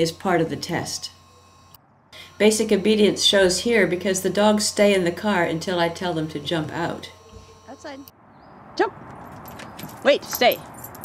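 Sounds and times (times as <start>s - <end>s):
collar tags jingling: 9.1s - 11.0s.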